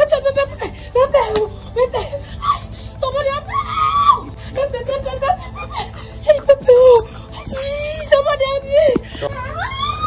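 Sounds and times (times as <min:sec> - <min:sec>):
woman yelling: 0:00.0 - 0:05.4, 0:06.3 - 0:10.0
woman screaming: 0:02.4 - 0:05.4, 0:06.3 - 0:10.0.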